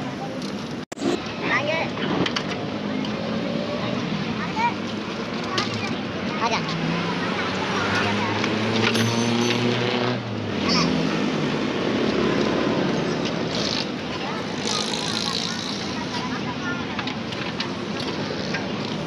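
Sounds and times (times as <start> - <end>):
people talking: 2.7 - 8.7, 14.1 - 17.6.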